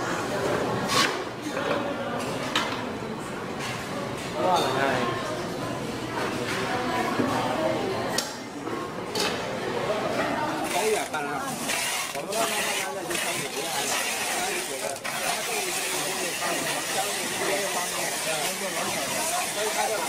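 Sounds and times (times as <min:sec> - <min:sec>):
background voices chattering: 0:00.0 - 0:20.0.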